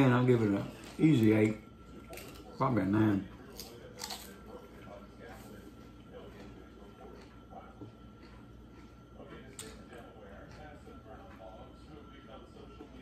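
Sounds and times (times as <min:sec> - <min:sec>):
faint hum: 0:00.0 - 0:13.0
man chewing: 0:00.2 - 0:13.0.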